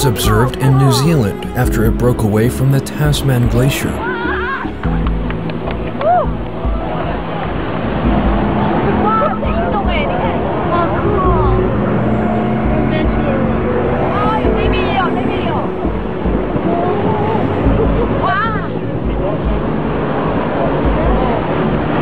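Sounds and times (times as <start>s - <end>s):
small boat motor running: 4.0s - 22.0s.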